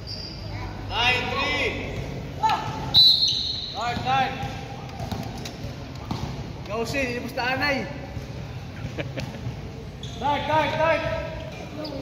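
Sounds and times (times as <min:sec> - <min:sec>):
players calling and shouting: 0:00.0 - 0:12.0
basketball bouncing on wooden court: 0:03.8 - 0:06.7.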